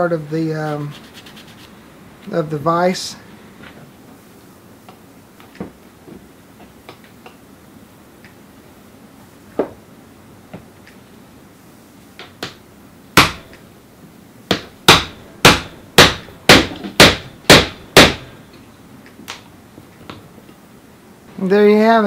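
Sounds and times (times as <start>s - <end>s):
hammer striking metal punch: 13.2s - 13.5s, 14.5s - 18.3s.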